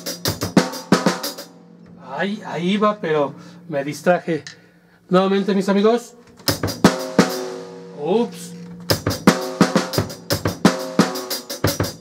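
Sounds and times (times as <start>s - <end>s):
bass drum kicks: 8.8s - 11.1s.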